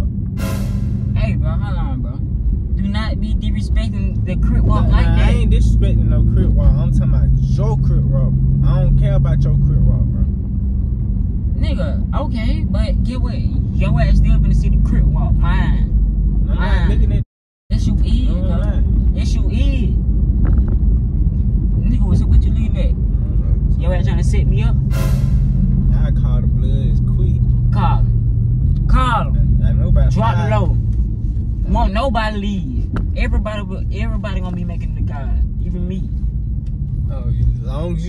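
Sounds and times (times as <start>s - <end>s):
car engine rumble: 0.0s - 38.0s
car cabin rumble: 16.7s - 28.0s.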